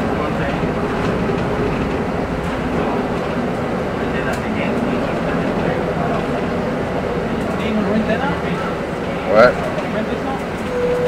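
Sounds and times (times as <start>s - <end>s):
bus rumbling and rattling: 0.0s - 11.0s.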